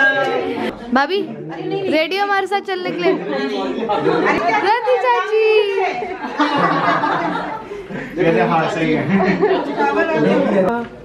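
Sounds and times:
people chatting: 0:00.0 - 0:07.4.

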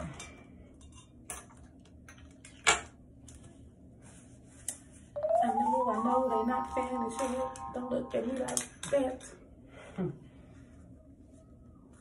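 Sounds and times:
rising tone: 0:05.2 - 0:08.4
music: 0:05.2 - 0:08.6.

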